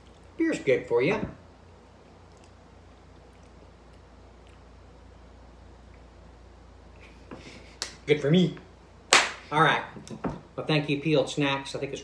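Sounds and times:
hand clap: 9.1 - 9.5.

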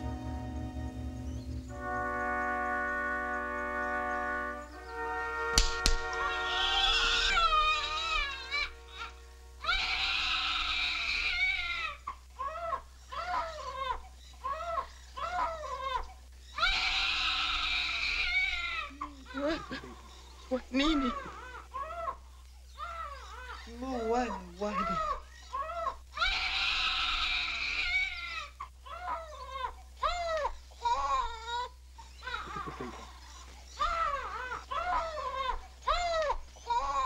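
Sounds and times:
held orchestral chord: 0.0 - 6.9
newborn baby crying: 6.2 - 37.0.

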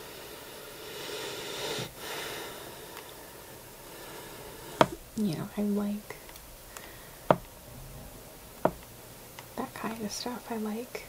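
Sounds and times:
person breathing close to microphone: 0.0 - 5.1, 6.6 - 8.1.

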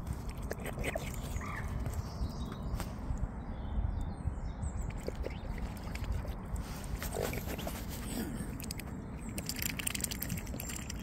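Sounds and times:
swans feeding in shallow water: 0.0 - 2.2, 4.7 - 11.0.

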